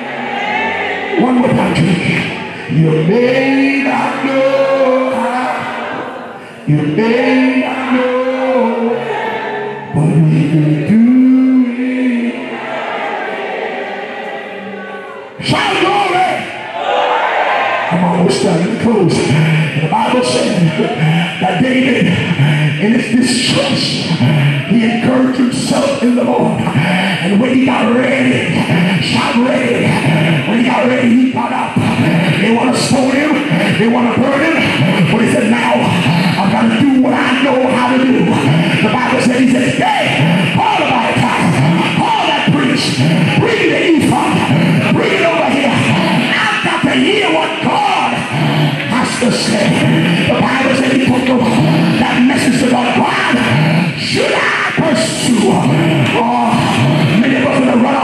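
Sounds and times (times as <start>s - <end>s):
preacher shouting amplified: 0.0s - 13.9s, 14.6s - 58.0s
congregation singing: 0.0s - 58.0s
loud music: 0.0s - 58.0s
man singing into microphone: 1.2s - 12.6s, 18.0s - 58.0s.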